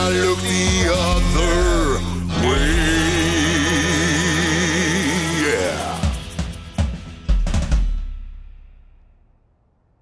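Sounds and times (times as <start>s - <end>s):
drum kit and bass hits: 0.0s - 4.1s, 5.0s - 9.0s.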